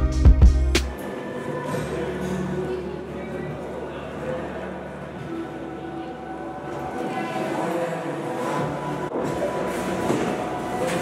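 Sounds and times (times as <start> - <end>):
background music with held notes: 0.0 - 3.2.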